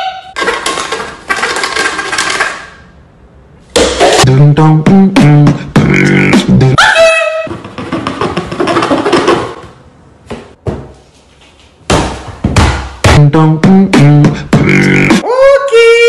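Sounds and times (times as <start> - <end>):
beatbox hissing: 4.1 - 6.8, 13.9 - 15.2.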